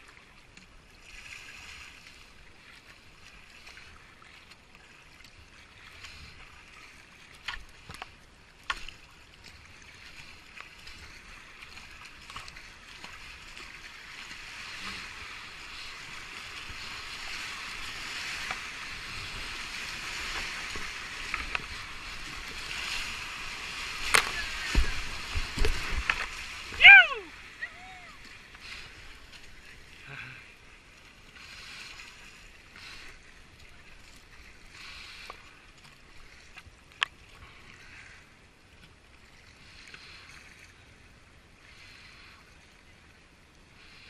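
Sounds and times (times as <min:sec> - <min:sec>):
heavy water splashes: 0:00.0 - 0:38.3
rushing whitewater: 0:09.4 - 0:32.2
paddle knocks: 0:24.0 - 0:26.8.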